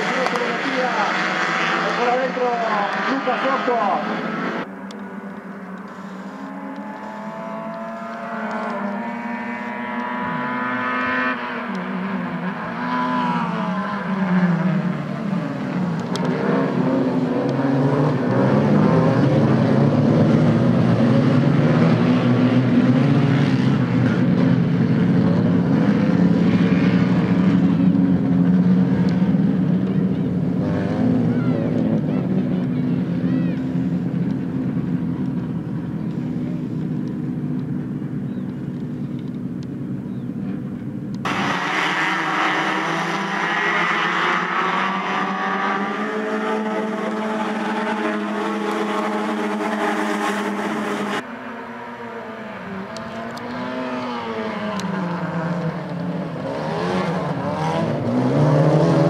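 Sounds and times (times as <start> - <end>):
race car engines running hard: 0.0 - 59.0.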